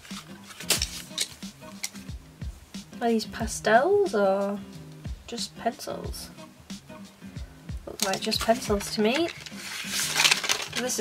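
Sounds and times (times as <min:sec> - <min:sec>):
quiet background music: 0:00.0 - 0:11.0
wooden pencils clicking together: 0:07.9 - 0:11.0.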